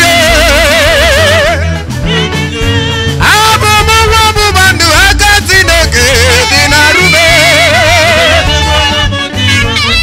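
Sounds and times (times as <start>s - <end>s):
steady bass line: 0.0s - 10.0s.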